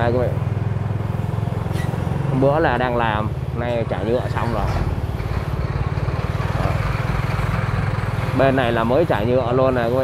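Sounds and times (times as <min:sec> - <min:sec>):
vehicle engine running: 0:00.0 - 0:10.0.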